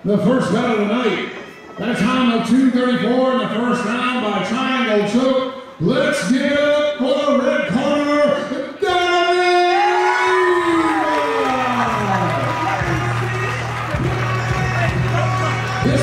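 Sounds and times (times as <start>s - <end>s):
announcer's amplified voice: 0.0s - 10.2s, 10.8s - 16.0s
crowd cheering: 9.5s - 16.0s
music: 12.0s - 16.0s.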